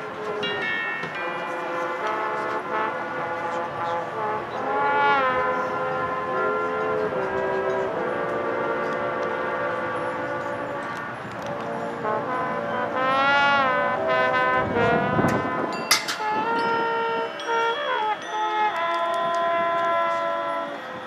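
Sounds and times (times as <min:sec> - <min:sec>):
marching band brass chords: 0:00.0 - 0:21.0.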